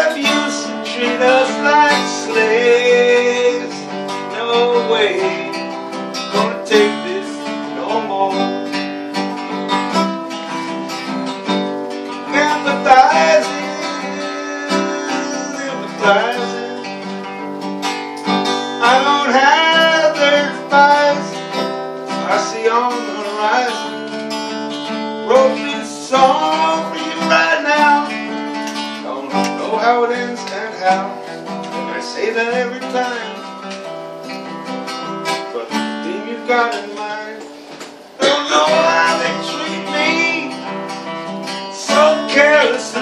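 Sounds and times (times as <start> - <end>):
man singing: 0.0 - 9.0, 12.0 - 17.4, 18.5 - 24.2, 25.2 - 33.7, 35.5 - 37.5, 38.2 - 43.0
acoustic guitar: 0.0 - 43.0.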